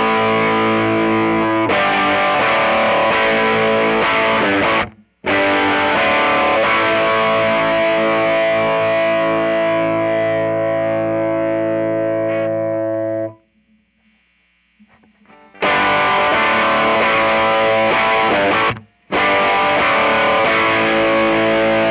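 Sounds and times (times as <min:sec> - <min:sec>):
overdriven electric guitar chord: 0:00.0 - 0:13.4, 0:15.2 - 0:21.9
faint amp hum: 0:00.0 - 0:21.9.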